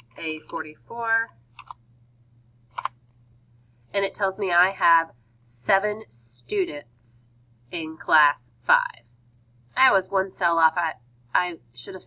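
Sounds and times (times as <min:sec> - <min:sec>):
computer keyboard keystrokes: 0:01.6 - 0:01.8, 0:02.7 - 0:03.0.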